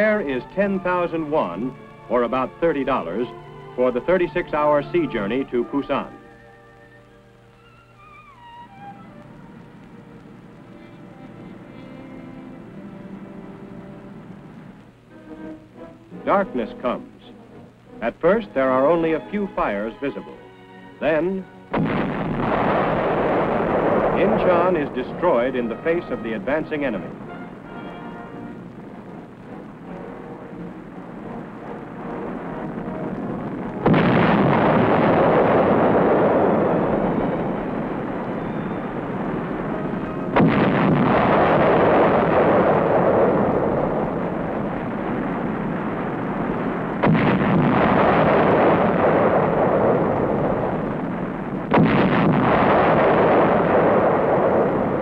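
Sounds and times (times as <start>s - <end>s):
demolition explosion rumble: 21.0s - 55.0s.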